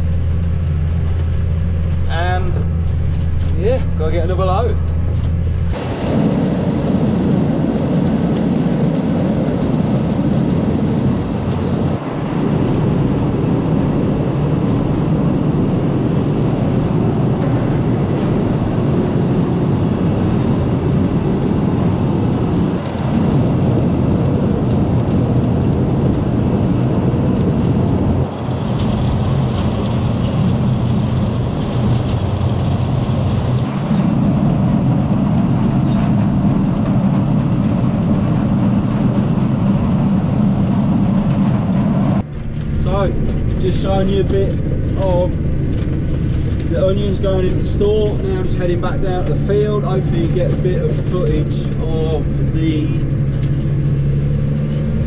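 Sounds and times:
conveyor belt motors rumbling: 0.0 - 55.0.

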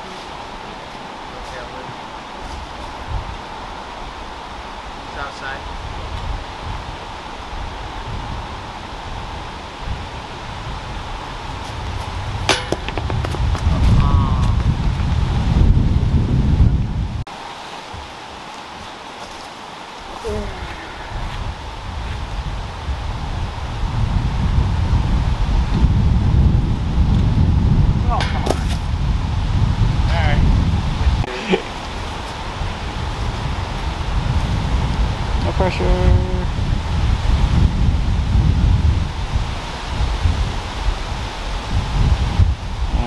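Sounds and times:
wind buffeting microphone: 0.0 - 43.0
cluster of sharp knocks: 12.5 - 13.4.

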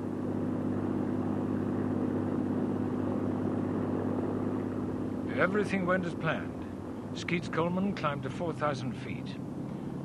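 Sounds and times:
propeller aircraft engine drone: 0.0 - 10.0.

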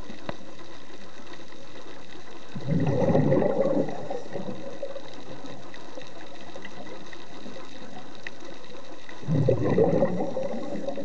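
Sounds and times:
faint clicks and crackles: 0.0 - 11.0
underwater hiss: 0.0 - 11.0.

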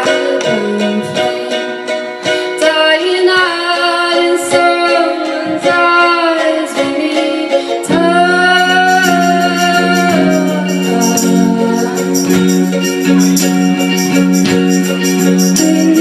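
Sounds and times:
strummed acoustic strings: 0.0 - 16.0
woman singing: 0.0 - 16.0.

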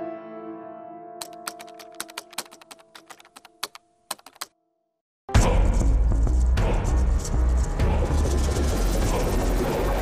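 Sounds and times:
background music chord: 0.0 - 1.4
laptop keyboard clicks: 1.2 - 4.5.

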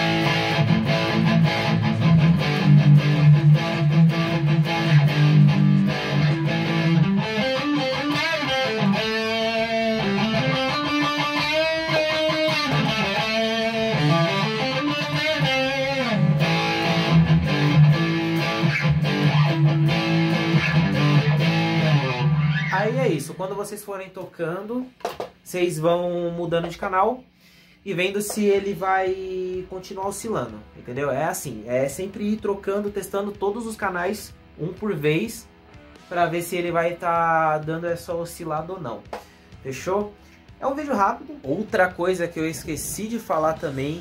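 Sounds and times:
electric guitar with string bends: 0.0 - 23.9.

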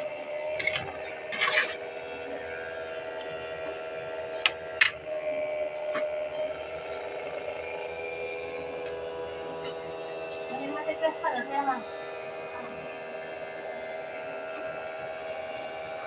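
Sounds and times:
steady hum: 0.0 - 16.0.

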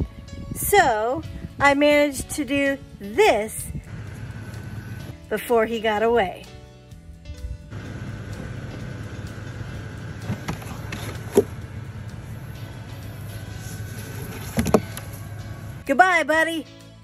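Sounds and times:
steady low rumble: 3.7 - 5.2, 7.2 - 15.9.

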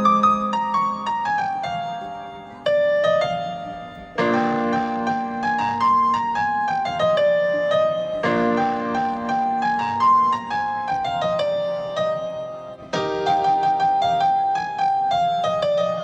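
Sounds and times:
held keyboard chords: 0.0 - 16.0
slow piano melody: 0.0 - 16.0.

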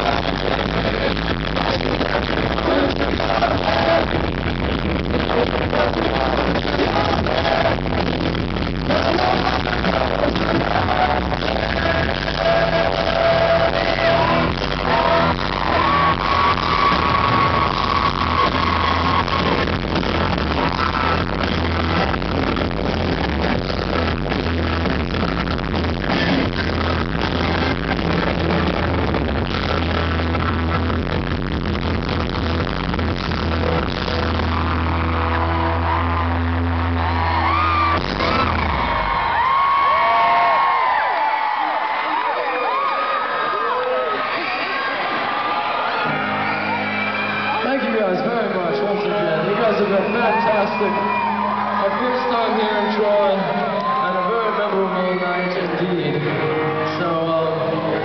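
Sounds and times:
live rock band playing: 0.0 - 40.6, 45.9 - 54.9, 55.6 - 58.0
crowd screaming and cheering: 0.0 - 58.0.

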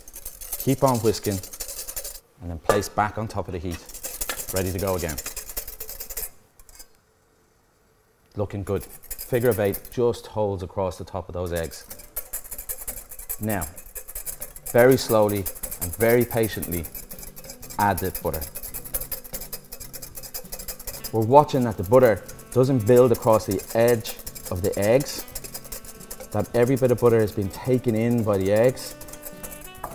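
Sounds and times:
whisk scraping glass bowl: 0.0 - 2.2, 3.7 - 6.9, 8.7 - 10.1, 11.5 - 29.9.

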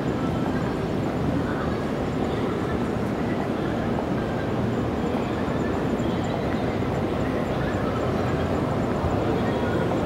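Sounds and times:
city street rumble: 0.0 - 10.0.

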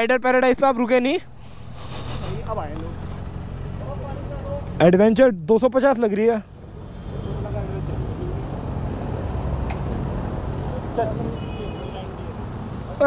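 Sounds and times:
motorcycle engines idling: 0.0 - 11.4.

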